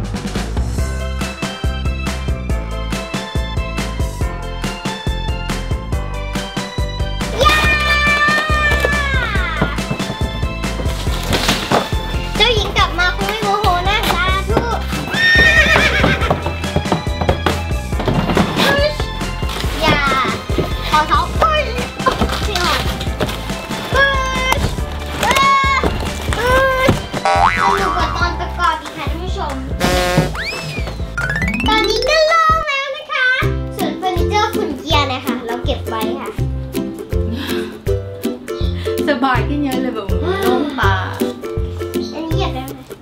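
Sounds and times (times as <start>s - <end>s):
background music with a beat: 0.0s - 12.6s, 26.1s - 32.7s
background music: 0.0s - 43.0s
girl yelling high-pitched: 7.3s - 9.8s, 25.2s - 27.0s, 31.7s - 33.5s
cartoon boing sound effects: 27.2s - 28.3s.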